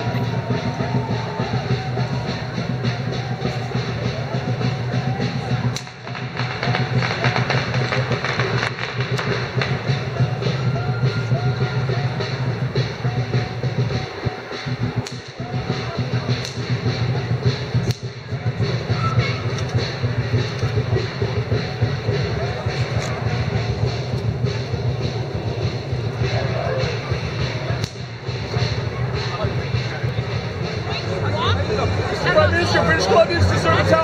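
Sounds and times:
music: 0.0 - 34.0
street noise din: 0.0 - 34.0
voices: 0.0 - 34.0.

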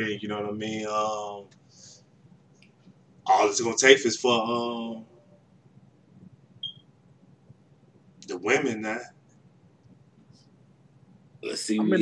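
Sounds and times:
faint low background hum: 0.0 - 12.0.

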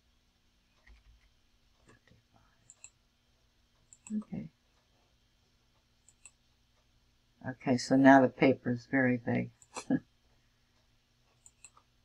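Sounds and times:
computer mouse clicks: 0.7 - 3.0, 3.8 - 4.3, 6.0 - 6.4, 11.3 - 11.9.

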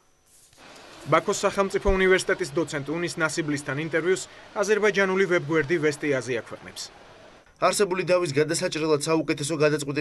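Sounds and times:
person talking: 1.0 - 7.0.

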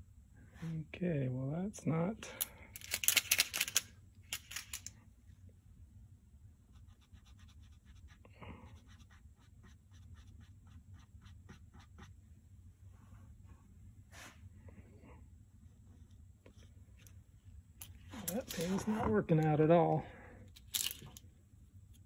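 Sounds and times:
paint pen rattling: 2.8 - 4.9.

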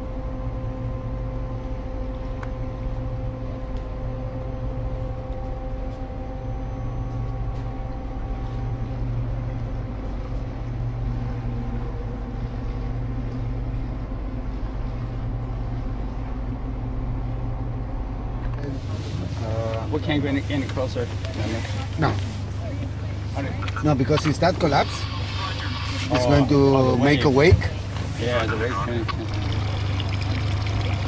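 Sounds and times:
ship engine drone: 0.0 - 31.0
higher steady hums: 0.1 - 31.0.

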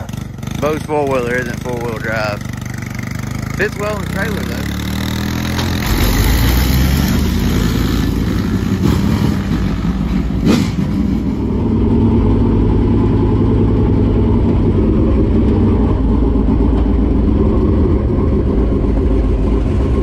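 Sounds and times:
race car engine running: 0.0 - 20.0.

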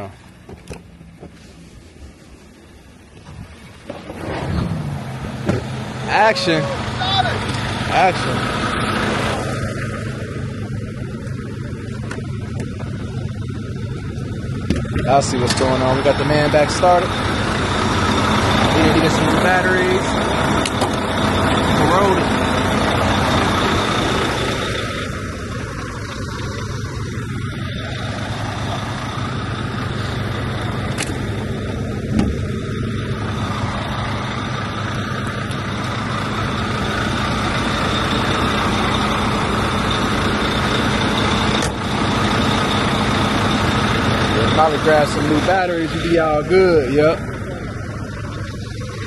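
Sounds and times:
diesel engine idling: 0.0 - 49.0.

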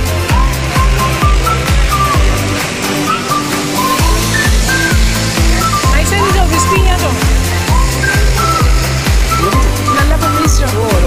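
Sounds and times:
synth melody: 0.0 - 11.0.

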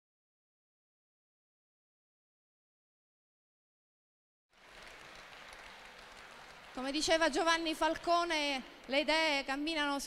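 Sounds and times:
seated audience ambience: 4.6 - 10.0.

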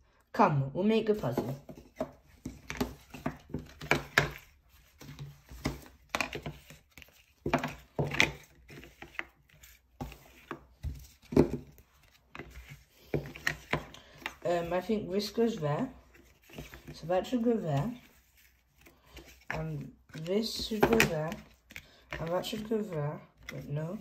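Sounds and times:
books scraping on a table: 1.2 - 14.8, 16.0 - 22.7.

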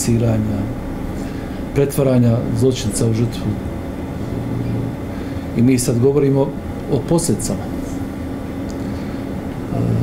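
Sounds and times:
low background hum: 0.0 - 10.0
man speaking: 1.7 - 3.7, 5.6 - 7.8, 9.7 - 10.0.

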